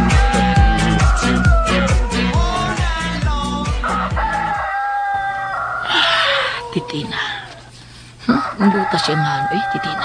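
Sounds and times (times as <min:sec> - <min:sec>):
disco music: 0:00.0 - 0:04.7
rooster crowing: 0:00.0 - 0:07.7, 0:08.3 - 0:10.0.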